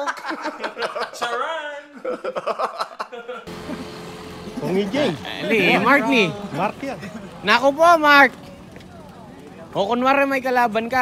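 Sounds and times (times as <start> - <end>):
men laughing heartily: 0.0 - 4.2, 5.5 - 7.5
outdoor background noise with hum: 2.4 - 11.0.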